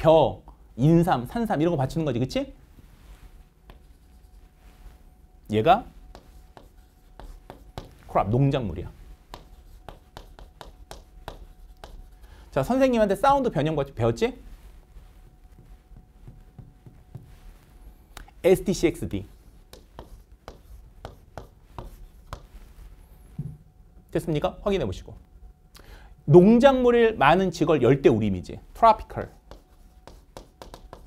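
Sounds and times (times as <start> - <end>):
chalk writing on chalkboard: 3.1 - 4.8, 5.8 - 8.1, 9.0 - 12.3, 14.6 - 17.8, 19.2 - 22.7, 29.0 - 31.0.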